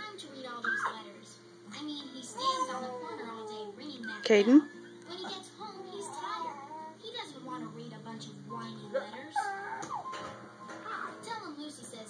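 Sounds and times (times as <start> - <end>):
music from television: 0.0 - 12.0
high voice singing quietly: 0.4 - 10.0.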